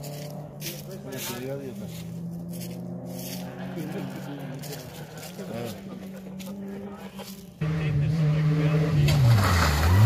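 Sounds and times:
rally car engine: 0.0 - 10.0.

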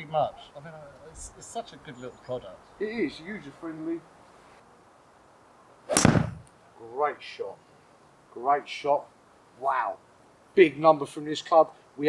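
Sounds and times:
golf club striking ball: 5.9 - 6.5.

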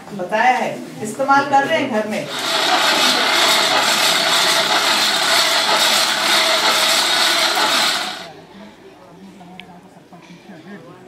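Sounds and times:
fan blower rushing air: 2.3 - 8.3.

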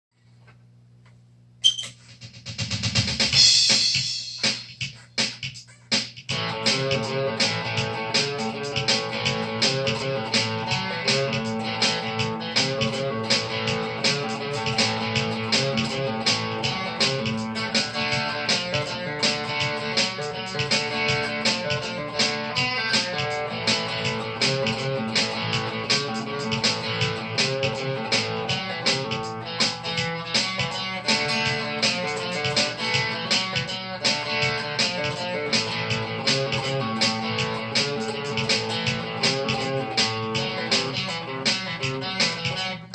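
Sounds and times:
electric guitar rockabilly rhythm: 2.0 - 42.9.

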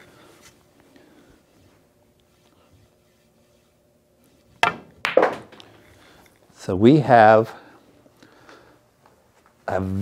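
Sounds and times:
cue tip striking ball: 4.6 - 5.7
pool balls clacking: 4.6 - 5.8.

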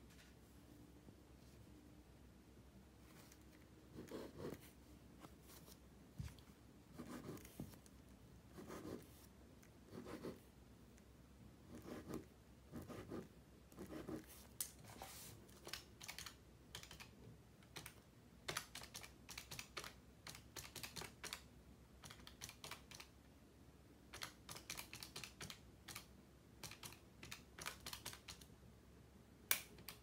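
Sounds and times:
pencil writing on paper: 3.9 - 4.7, 6.9 - 7.8, 8.5 - 9.2, 9.9 - 10.4, 11.7 - 14.4.

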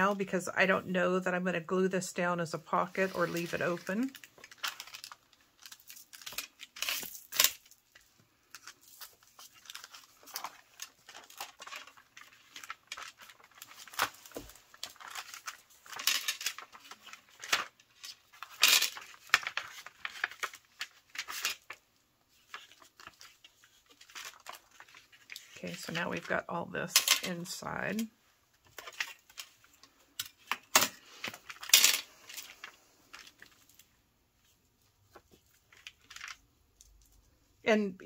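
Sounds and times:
paper envelopes rustling: 2.7 - 26.5, 27.3 - 37.4.

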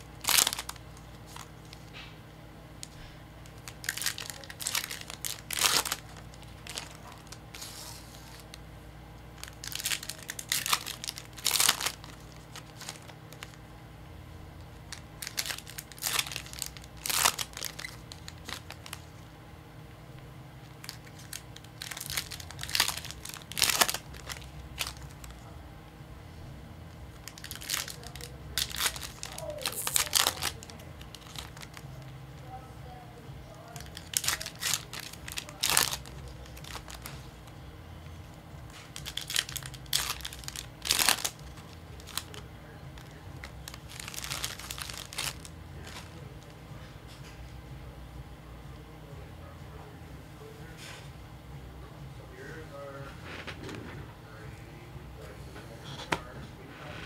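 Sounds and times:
foil packs crinkling and tearing: 0.0 - 2.1, 2.8 - 8.6, 9.4 - 13.6, 14.7 - 19.2, 20.6 - 25.5, 27.1 - 32.1, 33.6 - 37.5, 38.7 - 46.6.

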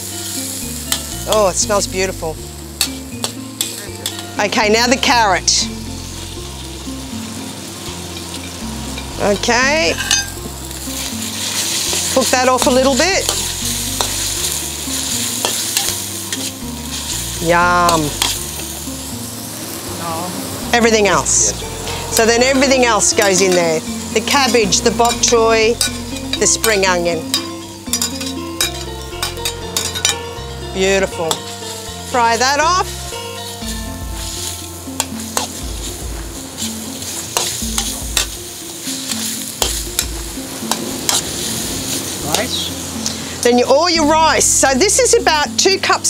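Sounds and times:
background music with low notes: 0.0 - 46.0
food sizzling in oil: 0.0 - 46.0
metal spatula scraping and clinking: 2.8 - 4.3, 8.1 - 17.1, 17.8 - 18.8, 21.8 - 30.3, 34.4 - 35.6, 36.6 - 43.2.

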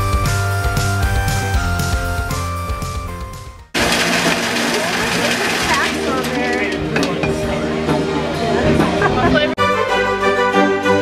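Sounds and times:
ice-shaving machine grinding: 3.8 - 7.2.

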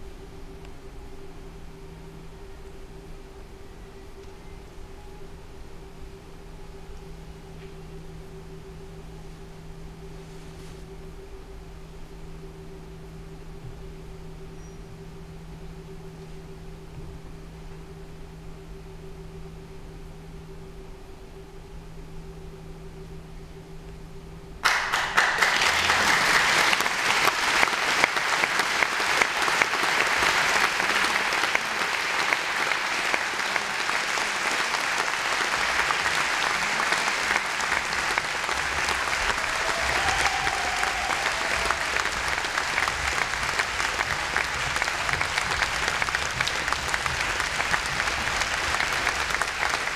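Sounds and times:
quiet hum: 0.0 - 49.9
audience applauding: 24.6 - 49.9.

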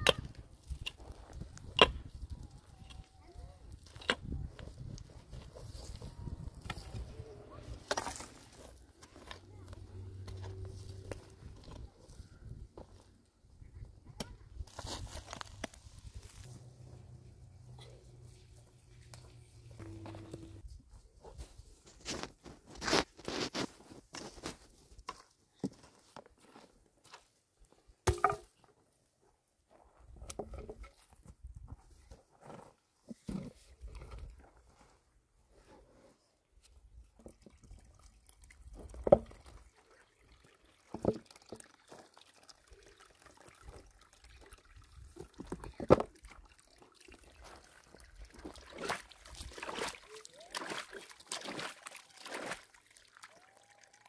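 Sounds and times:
pick digging in stony soil: 14.6 - 16.8, 21.8 - 24.7.

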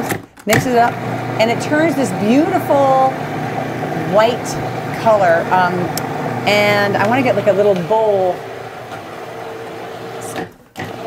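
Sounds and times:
food processor motor running: 0.8 - 11.0.

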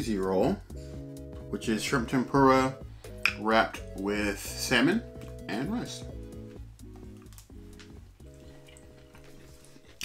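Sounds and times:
soft background music: 0.0 - 10.0
wet clicks of chewing: 6.9 - 10.0.

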